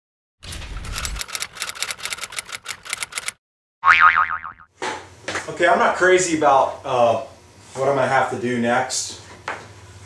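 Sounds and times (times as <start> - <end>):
typewriter key clicks: 0.8 - 3.4
wobbling boing sound effect: 3.8 - 4.7.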